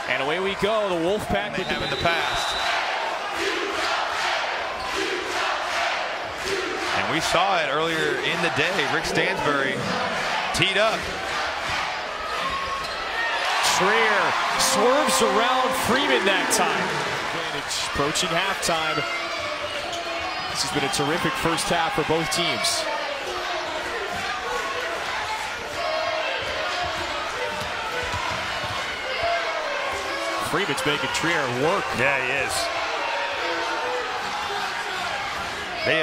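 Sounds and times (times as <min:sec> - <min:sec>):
crowd noise: 0:00.0 - 0:36.0.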